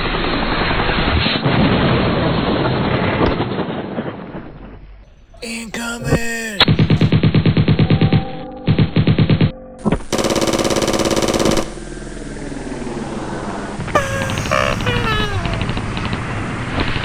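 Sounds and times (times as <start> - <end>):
machine-gun fire: 10.1 - 11.8.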